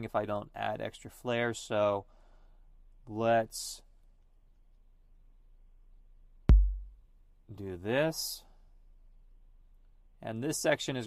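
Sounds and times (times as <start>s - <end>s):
electronic kick drum hit: 6.5s - 7.0s.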